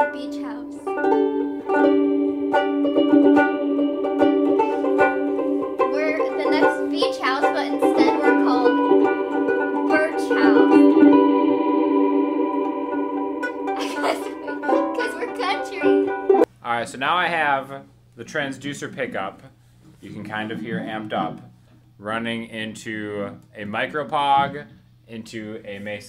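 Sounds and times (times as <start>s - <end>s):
second banjo ukulele: 0.0s - 11.8s, 13.4s - 16.5s, 20.1s - 21.5s
banjo ukulele strummed with reverb: 0.0s - 16.5s, 20.3s - 21.4s.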